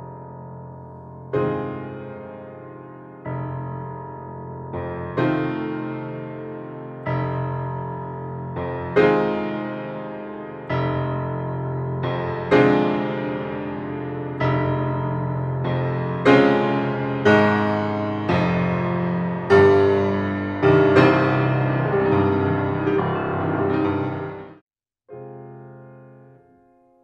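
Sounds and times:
grand piano playing slow chords: 0.0 - 27.0.

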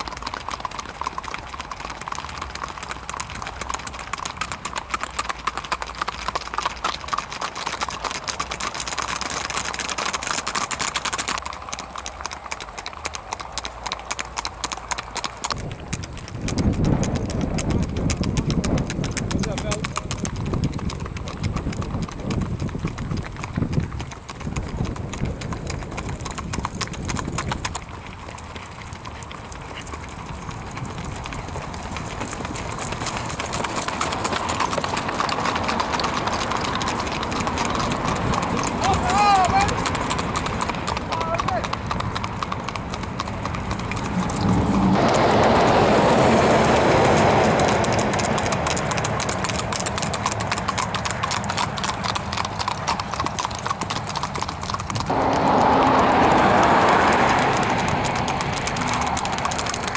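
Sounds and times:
hooves clip-clopping on asphalt: 0.0 - 59.9.

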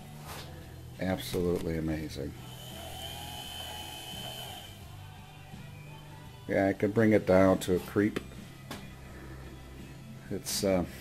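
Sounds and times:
motor high whine: 0.8 - 5.7.

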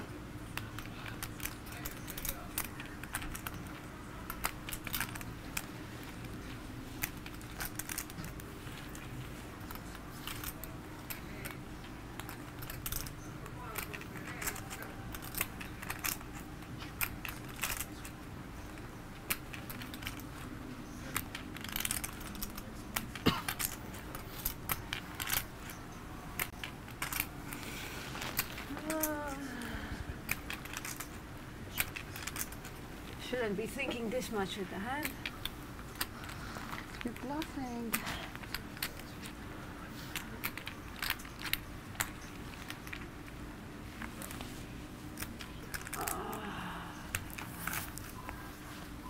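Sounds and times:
poker chips clicking: 0.4 - 33.2, 35.0 - 43.4, 44.0 - 48.2
murmured voices: 45.7 - 49.0.

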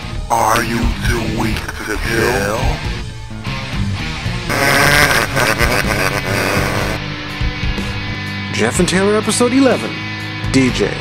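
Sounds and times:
background music: 0.0 - 11.0
villainous laughing: 4.5 - 7.0.

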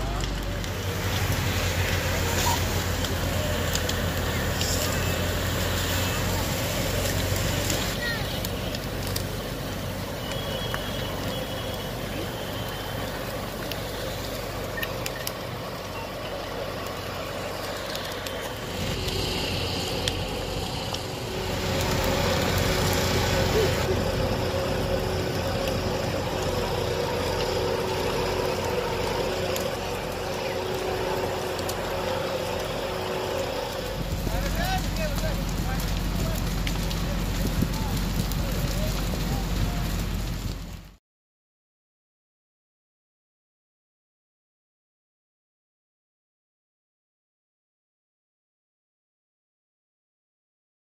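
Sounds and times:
indistinct voices: 0.0 - 40.1
fire burning: 0.0 - 41.0
fire engine running: 0.0 - 41.0.

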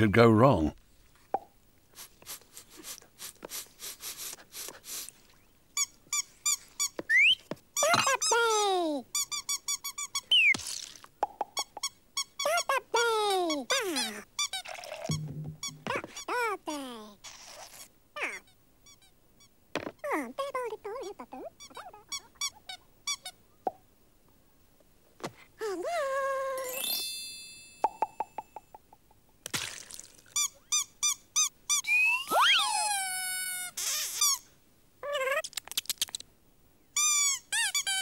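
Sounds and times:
squeaky cartoon voices babbling: 12.4 - 14.3, 18.2 - 18.5, 20.0 - 22.8, 31.8 - 34.4, 35.0 - 35.5.

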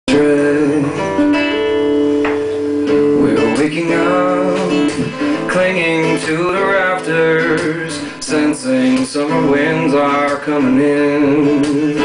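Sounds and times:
man's voice: 0.1 - 1.1, 3.2 - 12.0
acoustic guitar chords: 0.1 - 12.0.

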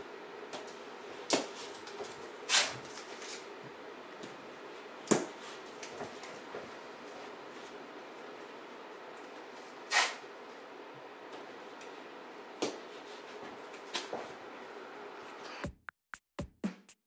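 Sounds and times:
masking tape pulled and pressed: 2.5 - 3.4, 9.9 - 10.2.

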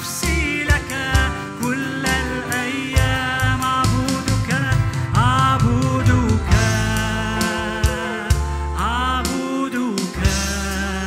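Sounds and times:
strummed acoustic guitars: 0.0 - 8.9
drums: 0.0 - 11.0
keyboard: 0.0 - 11.0
people singing worship song: 0.0 - 11.0.

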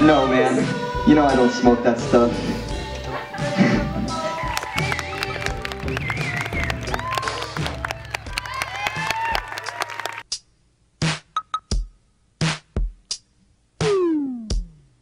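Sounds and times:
background music: 0.0 - 15.0
audience applauding and cheering: 4.1 - 10.3.

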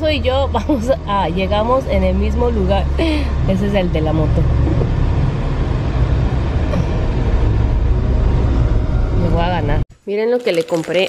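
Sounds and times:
car driving in traffic: 0.0 - 9.8.

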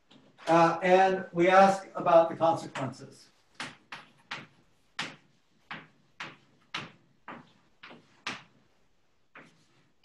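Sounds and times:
chalk strokes on blackboard: 9.4 - 9.9.

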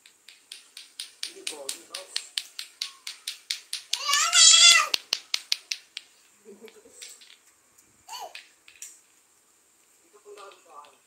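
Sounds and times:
rapid even clacking: 0.0 - 7.4
baby squealing: 4.0 - 5.0, 8.1 - 8.4.

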